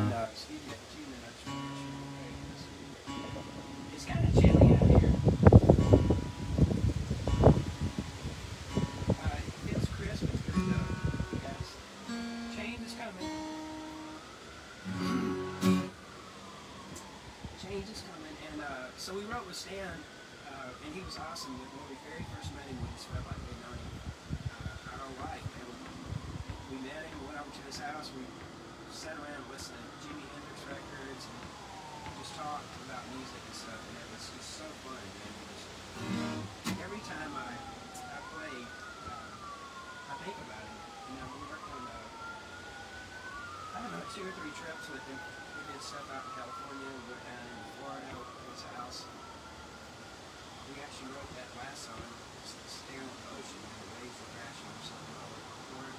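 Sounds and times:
guitar strumming: 0.0 - 0.4, 1.5 - 9.3, 10.5 - 16.0, 36.0 - 36.9
sirens wailing: 0.0 - 55.9.

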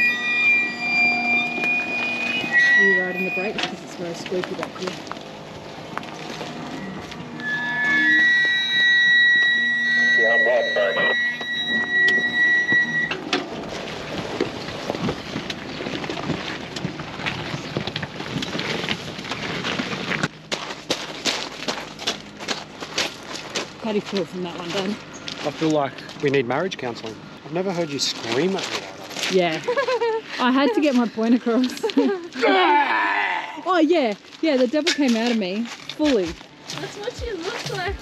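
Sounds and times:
brakes squealing: 0.0 - 38.0
wheels crunching over rocks: 2.8 - 7.5, 13.2 - 38.0.

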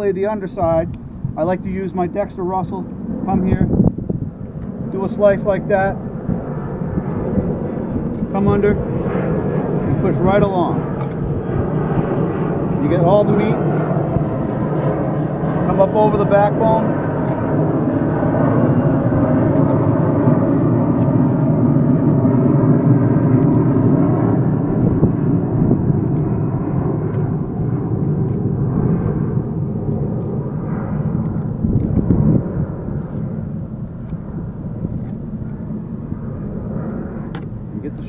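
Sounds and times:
steady engine drone: 0.0 - 38.0.

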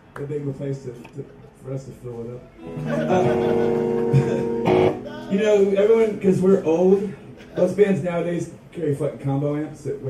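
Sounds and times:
electric guitar chord ringing: 2.6 - 5.9
sharp electric guitar strum: 3.2 - 5.4.

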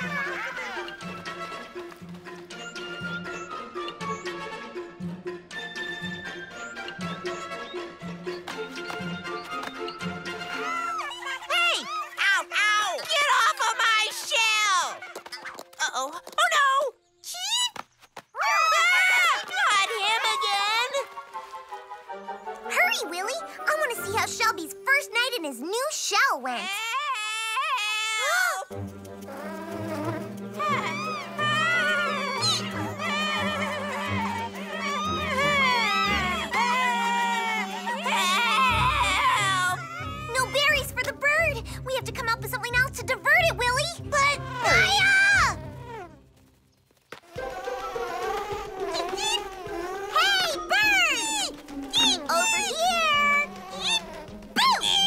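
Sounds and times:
background music: 0.0 - 17.4, 18.5 - 26.7, 28.2 - 55.0
bee wings buzzing: 19.0 - 24.2, 28.6 - 41.2, 44.0 - 55.0
high-pitched cartoon cries: 26.4 - 28.7, 30.6 - 40.8, 43.9 - 46.2, 48.8 - 55.0.

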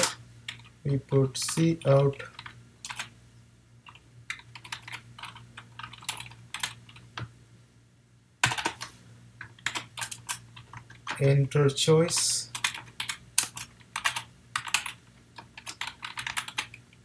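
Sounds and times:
typing on a keyboard: 2.4 - 3.1, 3.9 - 7.3, 8.4 - 8.8, 9.4 - 11.2, 12.5 - 16.9.

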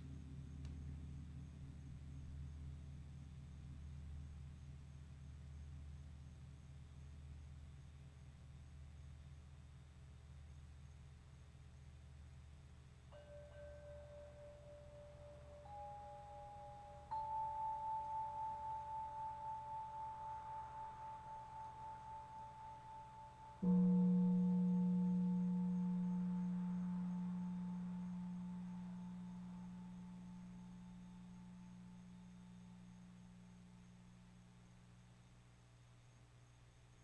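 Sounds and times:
sustained ringing tones: 13.1 - 34.5
gong struck with mallet: 23.6 - 31.9.

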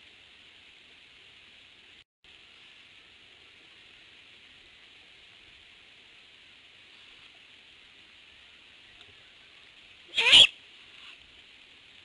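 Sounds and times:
faint high hiss: 0.0 - 12.0
owl screech: 10.1 - 10.6.

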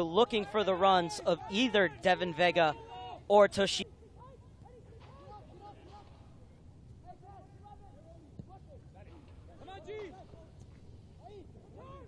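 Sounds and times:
people shouting and calling: 0.0 - 10.6, 11.2 - 12.0.

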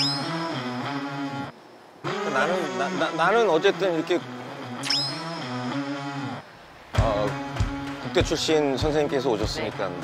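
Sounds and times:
sparkle ting sound effect: 0.0 - 0.4, 4.8 - 5.5.

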